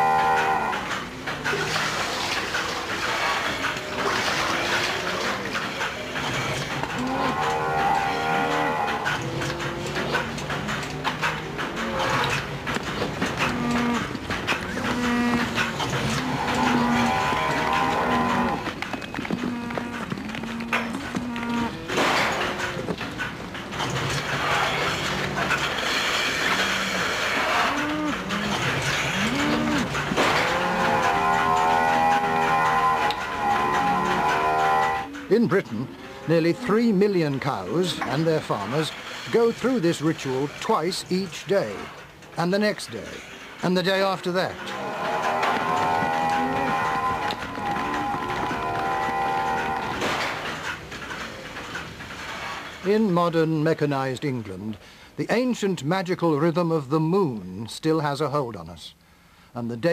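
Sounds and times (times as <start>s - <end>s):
cows mooing: 0.0s - 38.2s, 44.2s - 50.8s.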